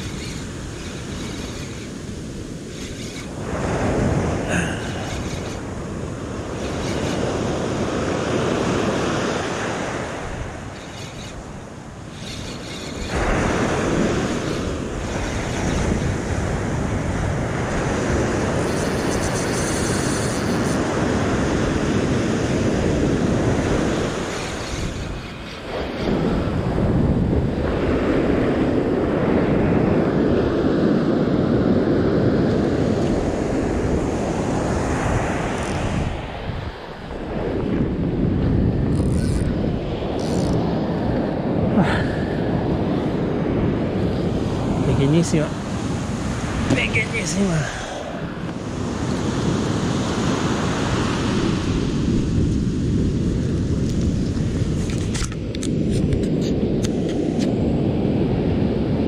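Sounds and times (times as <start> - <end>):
surf breaking on a sand beach: 0.0 - 12.2, 13.0 - 59.0
wind buffeting microphone: 0.0 - 59.0.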